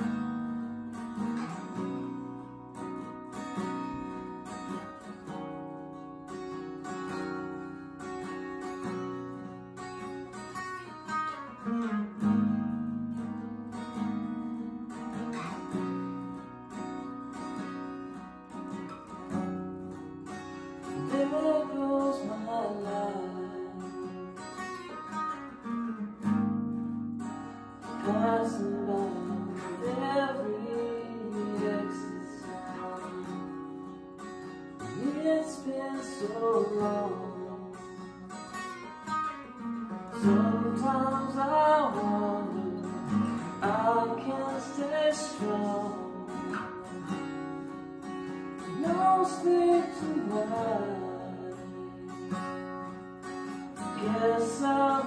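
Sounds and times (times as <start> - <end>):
acoustic guitar chords ringing: 0.0 - 55.0.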